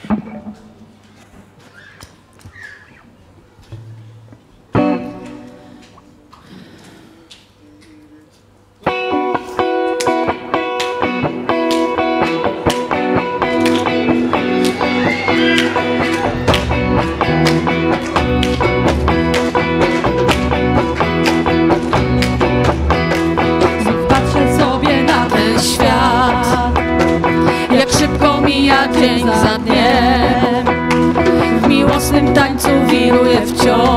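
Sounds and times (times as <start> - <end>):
strummed electric guitar: 0.0 - 1.0, 4.7 - 6.0, 8.8 - 33.9
live band music: 8.9 - 33.9
heavy bass line: 15.9 - 32.8.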